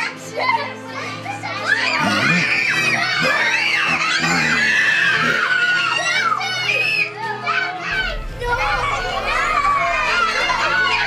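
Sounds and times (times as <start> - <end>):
children shouting and squealing: 0.0 - 11.0.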